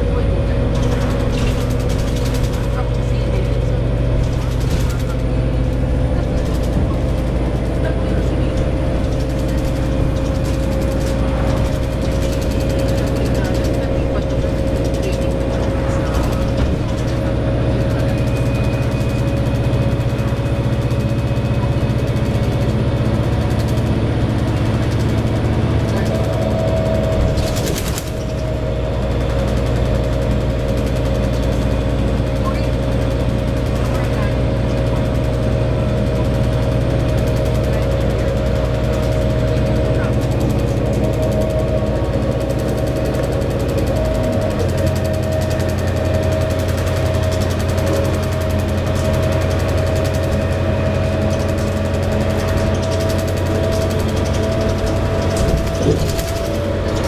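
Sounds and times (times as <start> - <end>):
bus engine and road drone: 0.0 - 57.0.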